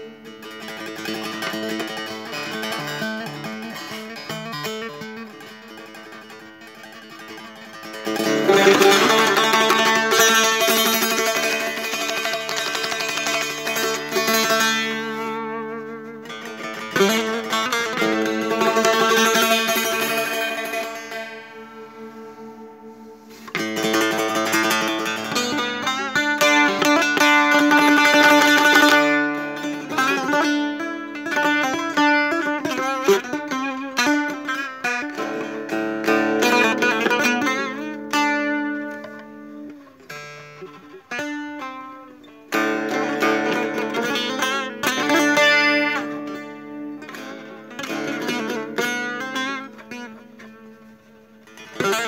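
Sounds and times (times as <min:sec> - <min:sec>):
long-necked lute plucked: 0:00.0 - 0:52.0.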